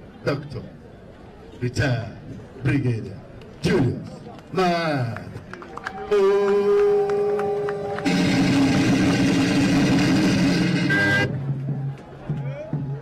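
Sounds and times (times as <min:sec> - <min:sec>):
sustained musical notes: 0:08.0 - 0:11.4.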